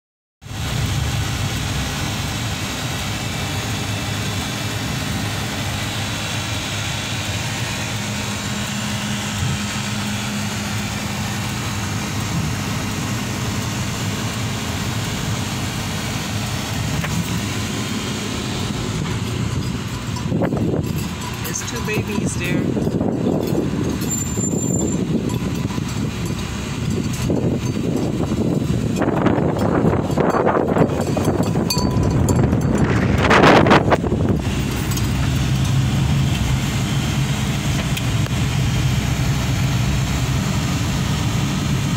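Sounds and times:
car engine and road noise: 0.4 - 41.9
person speaking: 21.4 - 22.8.

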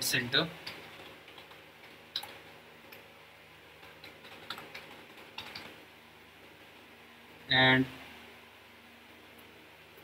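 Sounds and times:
keyboard keystrokes: 3.8 - 5.7.

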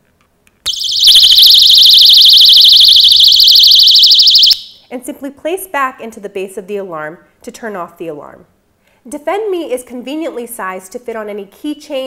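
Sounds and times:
high-pitched warbling alarm: 0.7 - 4.9.

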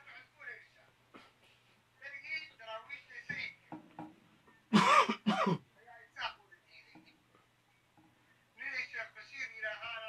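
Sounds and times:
person coughing: 4.7 - 5.6.

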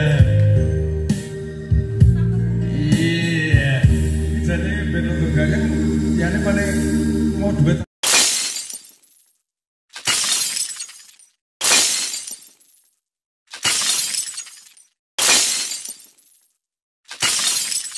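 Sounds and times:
electronic keyboard music: 0.0 - 7.8.

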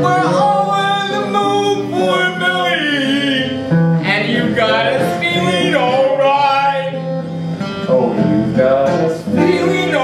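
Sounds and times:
man singing: 0.0 - 10.0
strummed acoustic guitar: 0.0 - 10.0.

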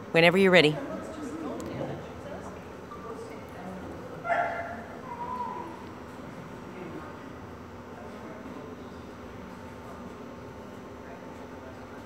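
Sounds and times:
dog barking: 4.3 - 4.9.

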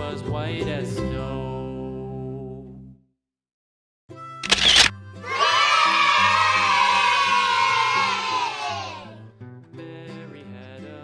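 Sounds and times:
background music: 0.0 - 2.6, 4.2 - 11.0
children cheering: 5.2 - 9.2.

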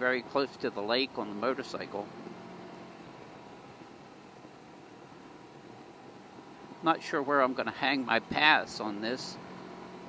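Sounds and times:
engine hum: 0.0 - 10.0
wind and road noise: 0.0 - 10.0.

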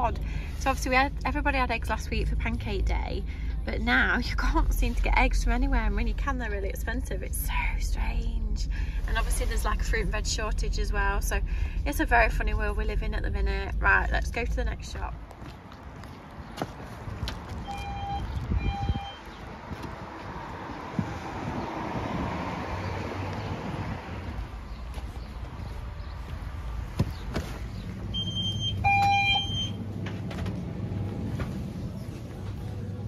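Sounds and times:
electronic beeps: 17.6 - 19.3, 28.2 - 29.8
vehicle passing on wet road: 19.8 - 24.6.

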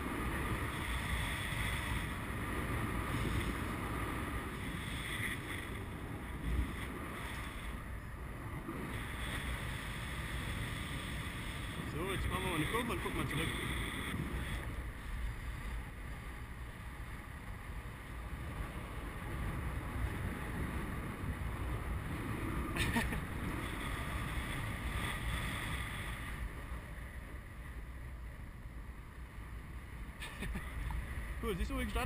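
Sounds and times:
wind noise on microphone: 0.0 - 28.6.

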